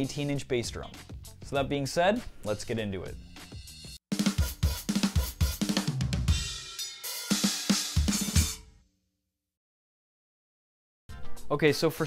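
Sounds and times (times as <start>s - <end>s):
hi-hat hits: 3.4s - 8.6s
cymbal crashes: 6.3s - 8.7s.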